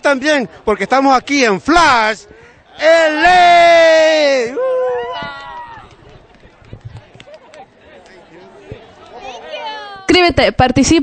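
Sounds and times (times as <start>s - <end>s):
street crowd hubbub: 0.0s - 11.0s
shouted vocal cheer: 2.8s - 5.9s.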